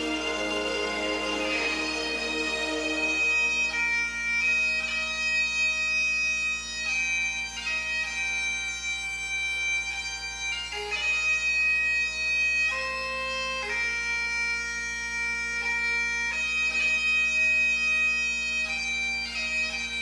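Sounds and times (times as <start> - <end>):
bagpipe music over sound system: 0.0 - 20.0.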